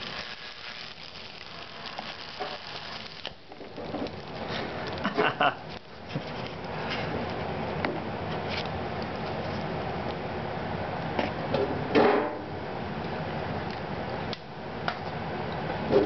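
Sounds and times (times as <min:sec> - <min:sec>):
electrical arcing snaps: 0:00.0 - 0:04.4
loud buzzing arc: 0:00.0 - 0:05.8
motor windings crackling and sizzling: 0:00.0 - 0:07.5.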